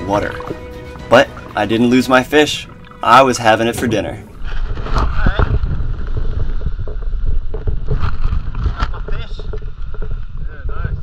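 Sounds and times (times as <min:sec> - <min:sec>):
wind buffeting microphone: 0:04.2 - 0:11.0.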